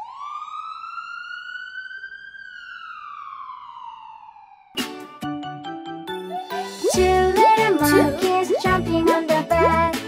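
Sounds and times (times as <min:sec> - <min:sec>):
ambulance siren wailing: 0:00.0 - 0:04.8.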